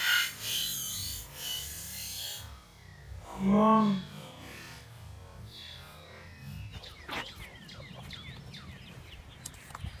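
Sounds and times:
birds chirping: 5.5s - 10.0s.

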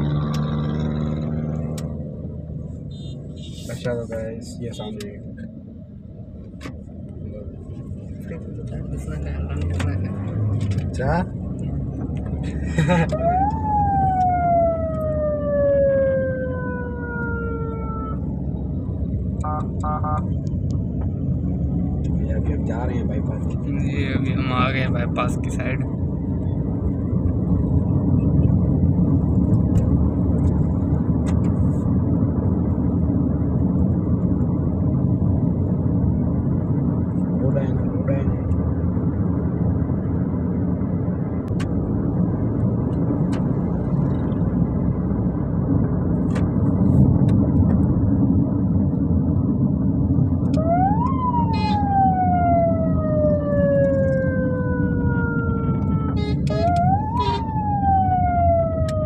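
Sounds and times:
road and engine noise inside vehicle: 0.0s - 59.0s
siren rising and falling: 12.9s - 18.6s, 50.5s - 59.0s.

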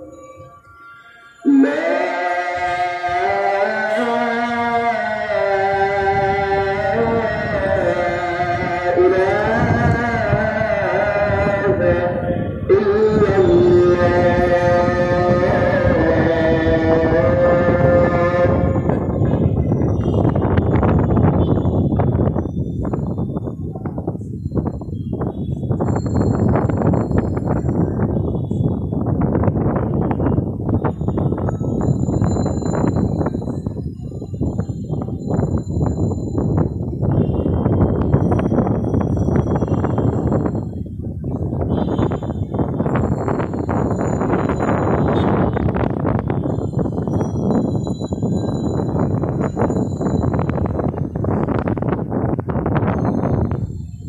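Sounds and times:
wind buffeting microphone: 1.7s - 54.0s.

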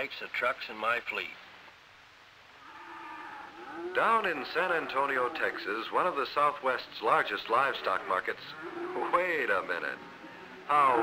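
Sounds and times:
cow mooing: 2.6s - 5.8s, 7.6s - 11.0s.

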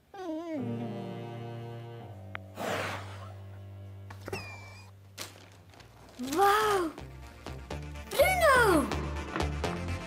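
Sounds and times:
sustained synth chord: 0.6s - 4.3s.

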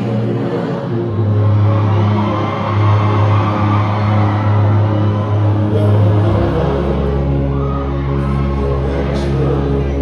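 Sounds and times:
live concert music: 0.0s - 10.0s
crowd cheering and whooping: 0.1s - 10.0s.

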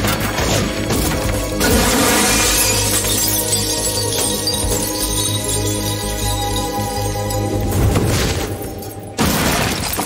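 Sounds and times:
background music: 0.0s - 10.0s
glass breaking: 0.4s - 7.1s, 7.7s - 10.0s.

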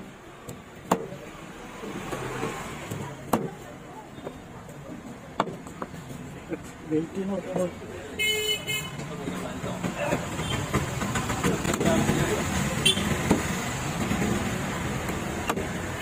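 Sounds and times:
street traffic noise: 0.0s - 16.0s
vehicle horn toot: 8.2s - 8.9s, 12.8s - 13.1s.

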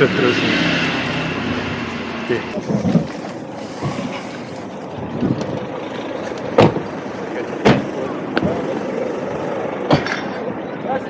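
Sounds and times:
city street traffic: 0.0s - 11.0s
indistinct voices: 0.0s - 11.0s
sharp knocks: 6.6s - 6.8s, 7.6s - 8.6s.

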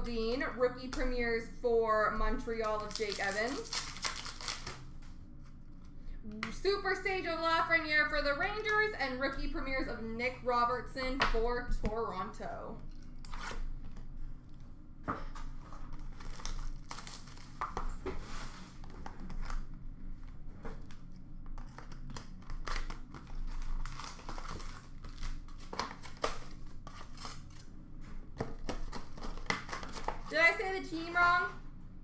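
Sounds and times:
foil wrappers crinkling and tearing: 2.6s - 4.9s, 15.8s - 17.9s, 21.6s - 27.7s
cards rustling and tapping: 28.4s - 30.4s.

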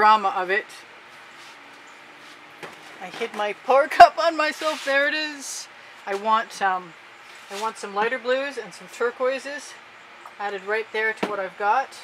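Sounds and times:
background hiss: 0.0s - 11.1s
faint steady hum: 0.0s - 12.0s.

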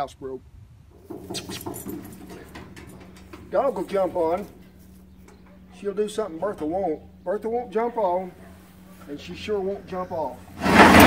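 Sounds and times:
steady low hum: 0.5s - 11.0s
dog claws scrabbling on metal: 1.0s - 6.2s.

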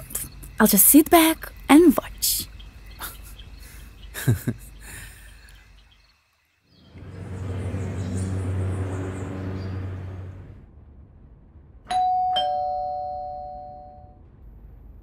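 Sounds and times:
low rumble: 6.8s - 12.2s, 13.8s - 15.0s
doorbell ding-dong chimes: 11.9s - 14.2s.

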